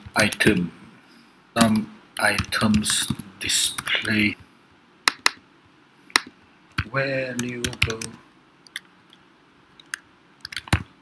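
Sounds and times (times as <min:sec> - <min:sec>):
keyboard keys clicking: 0:06.2 - 0:08.8, 0:09.8 - 0:10.9.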